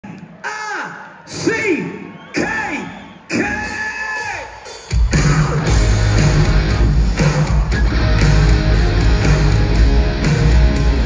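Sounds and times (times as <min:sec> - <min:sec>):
singer yelling through pa: 0:00.3 - 0:04.6
live rock band playing: 0:03.6 - 0:11.0.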